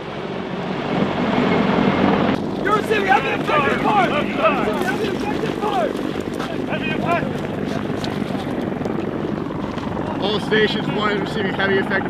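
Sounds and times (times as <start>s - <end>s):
helicopter rotor and engine drone: 0.0s - 12.0s
person shouting: 2.7s - 5.9s.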